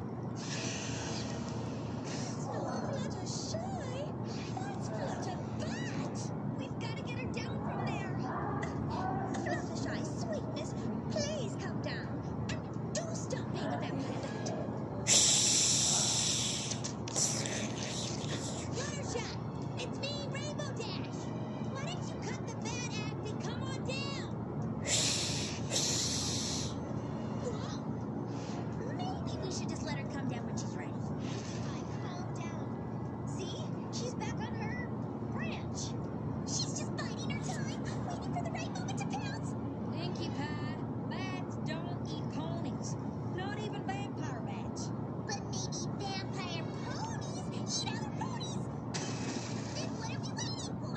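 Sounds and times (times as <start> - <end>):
loud hiss: 15.1 - 17.5, 24.9 - 26.7
bats squeaking and chittering: 24.9 - 26.8.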